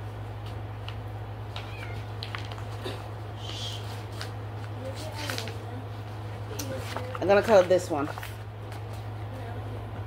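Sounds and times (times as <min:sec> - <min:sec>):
pet squeaking meow: 0:01.6 - 0:02.2
pages rustling: 0:01.6 - 0:02.8, 0:03.7 - 0:09.1.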